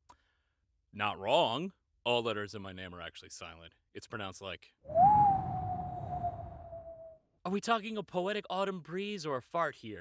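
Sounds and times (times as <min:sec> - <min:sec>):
wind gust whistling: 0:04.9 - 0:07.2.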